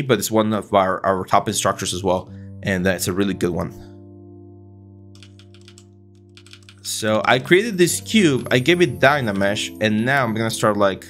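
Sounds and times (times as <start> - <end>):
keyboard keystrokes: 5.2 - 7.5.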